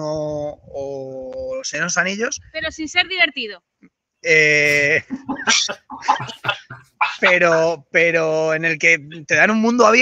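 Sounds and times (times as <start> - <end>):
men laughing: 4.5 - 7.7.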